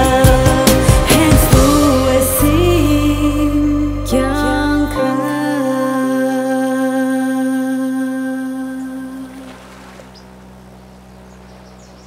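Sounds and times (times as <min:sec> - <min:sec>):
low steady hum: 0:01.4 - 0:12.0.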